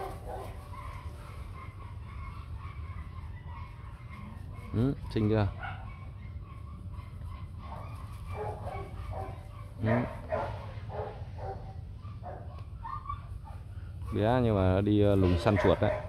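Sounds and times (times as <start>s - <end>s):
dogs barking and yipping: 0.0s - 16.0s.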